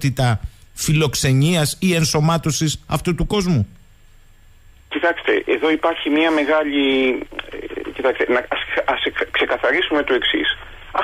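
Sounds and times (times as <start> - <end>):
man speaking over telephone: 4.9 - 11.0.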